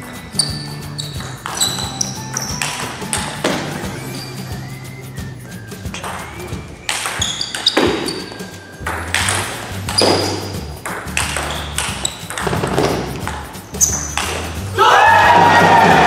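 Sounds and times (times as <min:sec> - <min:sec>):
table tennis ball hits: 0:00.0 - 0:04.4, 0:05.8 - 0:16.0
background music with low bass: 0:00.0 - 0:16.0
ball bouncing on table: 0:01.0 - 0:04.0, 0:05.9 - 0:14.7.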